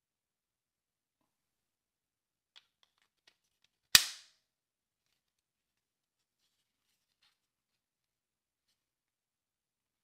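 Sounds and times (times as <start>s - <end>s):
plastic snap: 3.9s - 4.3s.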